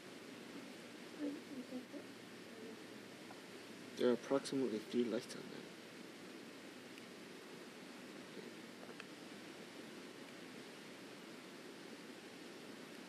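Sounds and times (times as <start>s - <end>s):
low background hiss: 0.0s - 13.0s.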